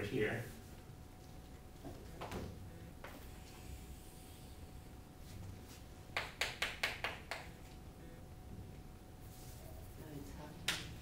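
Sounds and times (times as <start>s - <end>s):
faint room noise: 0.0s - 11.0s
chalk tapping on chalkboard: 6.2s - 7.5s.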